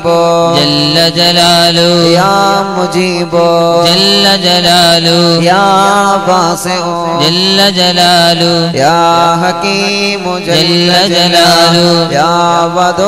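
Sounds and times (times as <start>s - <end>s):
devotional chanting: 0.0s - 13.0s.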